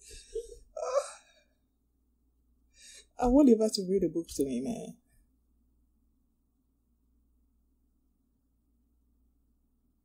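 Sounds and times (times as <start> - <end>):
woman sighing: 0.0 - 1.4
faint breath: 2.7 - 3.2.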